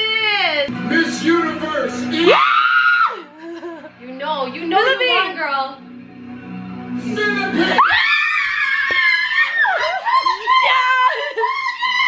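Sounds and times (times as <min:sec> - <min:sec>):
woman screaming: 0:02.3 - 0:03.3, 0:07.8 - 0:12.0.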